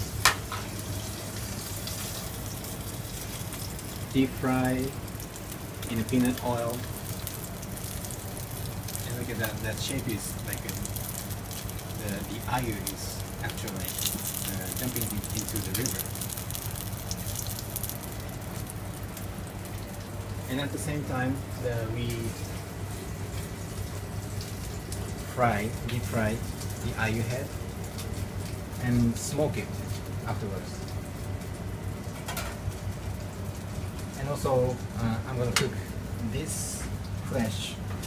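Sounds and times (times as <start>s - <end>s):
fish deep-frying in oil: 0.0s - 38.0s
steady low hum: 0.0s - 38.0s.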